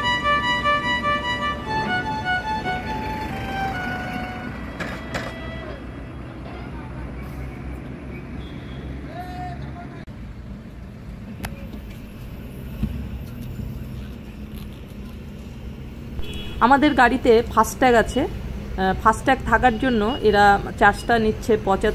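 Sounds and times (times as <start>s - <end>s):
low rumble of road traffic: 0.0s - 21.9s.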